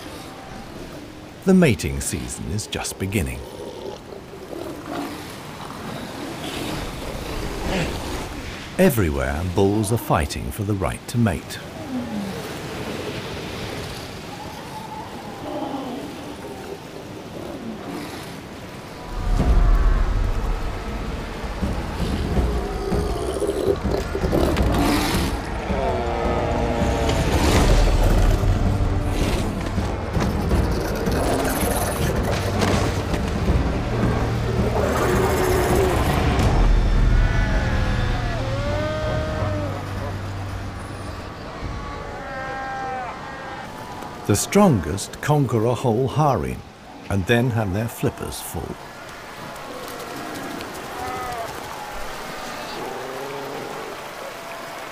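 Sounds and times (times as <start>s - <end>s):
seals growling and barking: 3.4s - 8.4s, 11.6s - 44.8s, 48.8s - 54.9s
background music with low drone: 19.0s - 43.6s.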